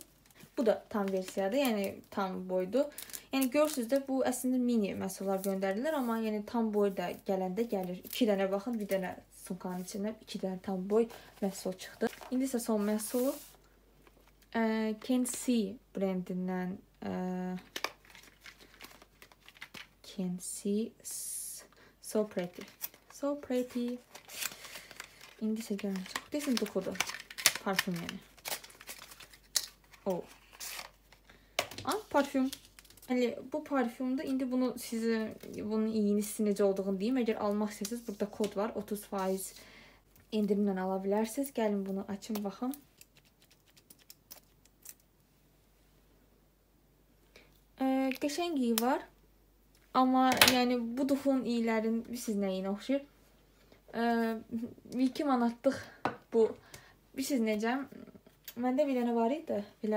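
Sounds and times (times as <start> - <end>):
paper and card crinkling: 0.1 - 4.1, 11.1 - 15.4, 17.6 - 20.0, 22.2 - 33.4, 41.8 - 45.1.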